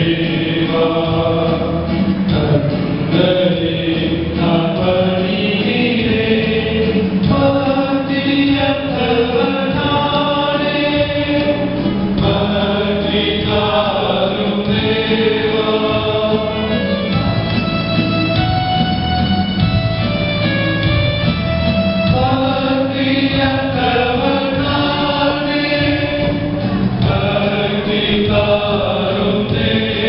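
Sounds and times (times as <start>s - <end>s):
choir singing a hymn: 0.0s - 18.6s, 22.0s - 30.0s.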